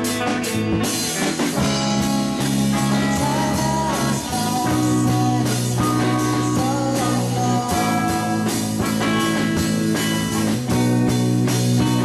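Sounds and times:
drum kit and cymbals: 0.0s - 12.0s
rock band playing live: 0.0s - 12.0s.

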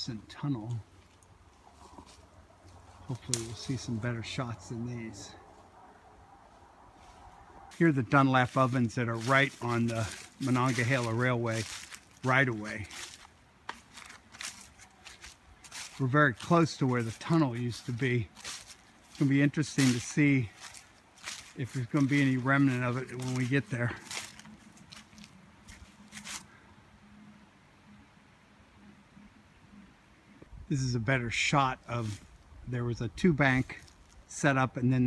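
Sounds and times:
footsteps crunching dry leaves: 0.2s - 5.4s, 6.9s - 26.6s, 31.5s - 32.6s, 33.2s - 34.6s.

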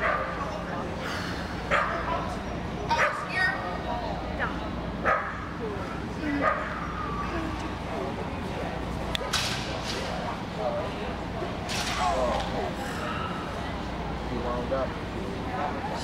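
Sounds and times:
sharp cracks: 11.7s - 12.5s.

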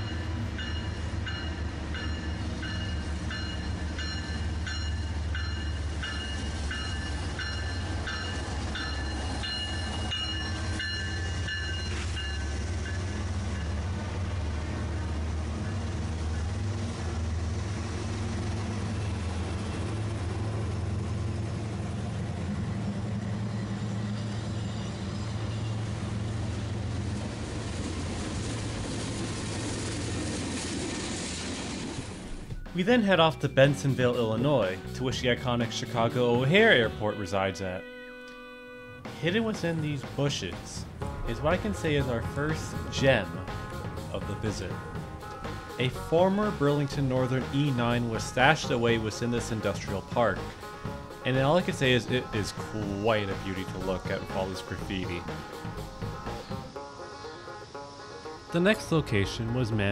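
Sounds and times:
locomotive bell ringing: 0.0s - 14.0s, 22.9s - 26.6s, 32.3s - 59.9s
freight cars rolling past: 0.0s - 37.6s, 39.0s - 59.9s
diesel locomotive engine rumble: 0.0s - 59.9s.

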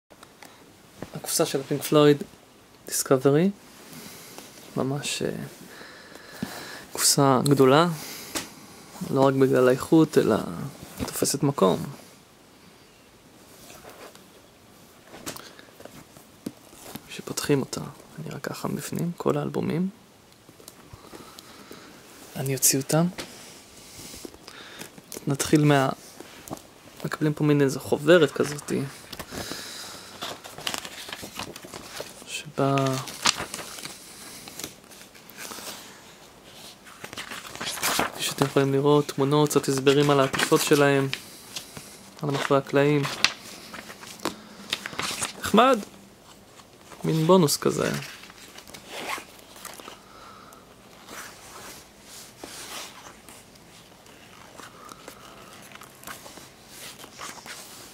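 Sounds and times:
paper pages turning: 24.2s - 50.0s, 50.9s - 57.9s.

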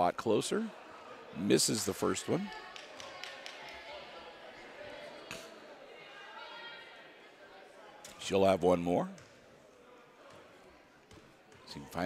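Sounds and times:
faint crowd murmur: 0.0s - 12.0s.

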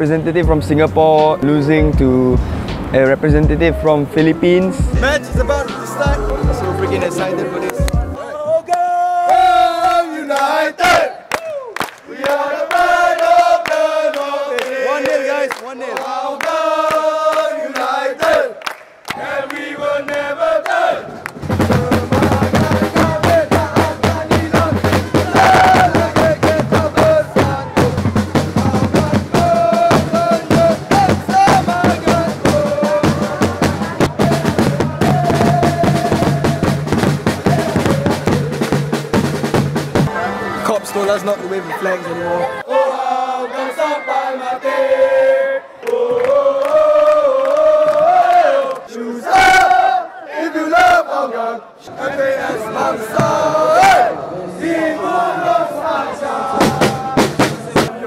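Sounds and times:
drums beating fast: 0.4s - 8.2s, 21.4s - 40.2s, 56.4s - 58.0s
football supporters chanting: 4.8s - 11.4s, 12.0s - 39.2s, 40.0s - 58.0s.

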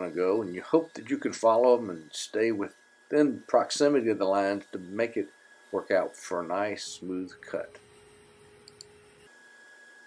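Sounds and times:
thin steady hum: 0.0s - 10.0s.

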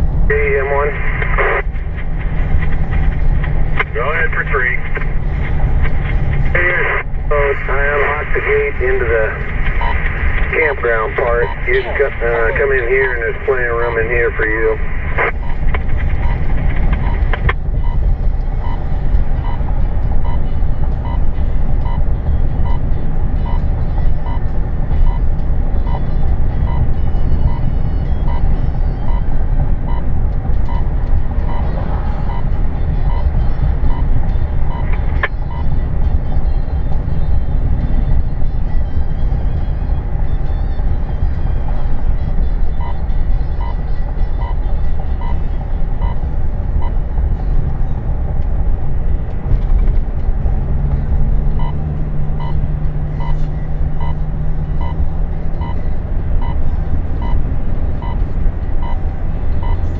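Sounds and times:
road and engine noise inside car: 0.0s - 59.9s.

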